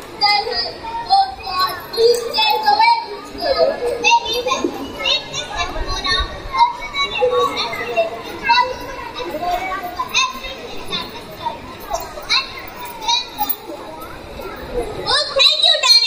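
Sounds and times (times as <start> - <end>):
children talking and calling: 0.0 - 16.0.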